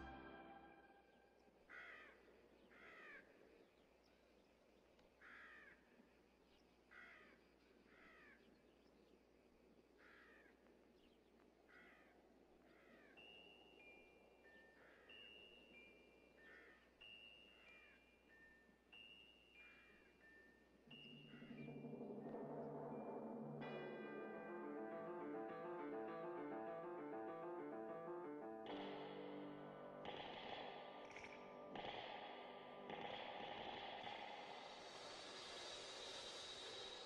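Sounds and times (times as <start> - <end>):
chime-like tune: 0.0 - 1.0, 20.9 - 28.2.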